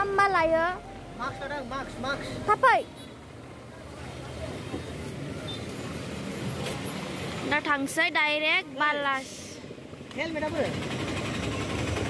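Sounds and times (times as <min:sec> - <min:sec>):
person speaking: 0:00.0 - 0:03.1
street traffic rumble: 0:00.0 - 0:12.0.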